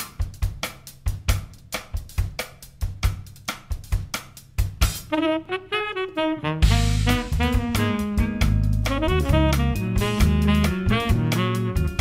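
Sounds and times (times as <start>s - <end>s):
drum kit playing jazz groove: 0.0s - 12.0s.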